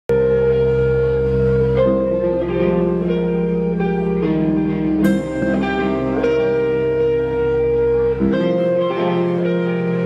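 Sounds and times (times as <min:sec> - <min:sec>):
live rock band playing: 0:00.1 - 0:10.0.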